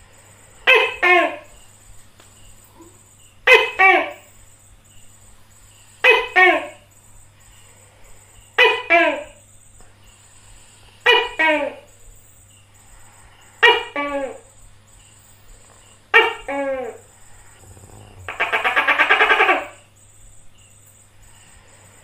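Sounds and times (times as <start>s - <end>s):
gecko calling: 0.3s - 5.0s, 10.1s - 20.0s.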